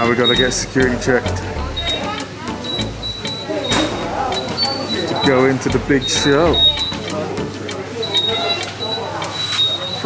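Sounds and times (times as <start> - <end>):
indistinct voices and chatter: 0.0 - 10.0
thin high electronic tone: 1.6 - 7.1.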